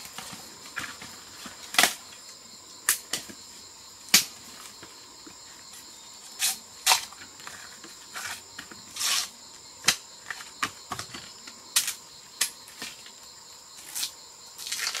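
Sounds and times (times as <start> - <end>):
dry bamboo cracking: 0.0 - 2.0, 13.8 - 15.0
high insect drone: 0.0 - 15.0.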